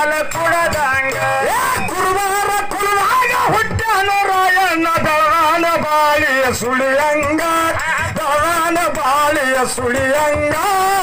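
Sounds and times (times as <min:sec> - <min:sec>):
men singing folk song: 0:00.0 - 0:11.0.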